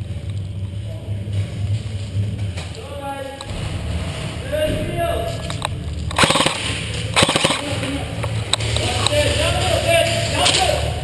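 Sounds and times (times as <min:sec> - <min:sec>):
toy gun rapid-fire shots: 0:06.1 - 0:07.8.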